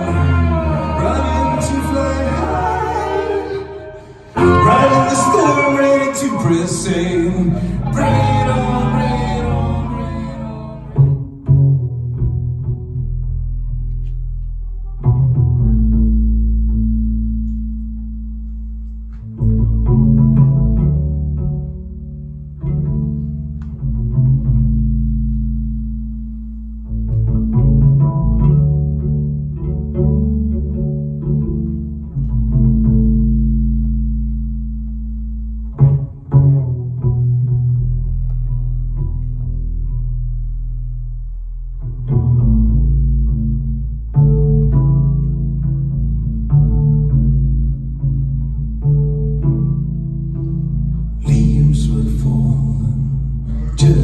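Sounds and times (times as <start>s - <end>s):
double bass played pizzicato: 0.0s - 54.0s.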